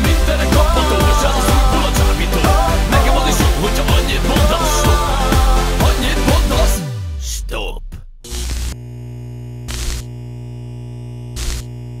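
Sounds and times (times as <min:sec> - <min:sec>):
low synthesizer drone: 0:02.0 - 0:05.7.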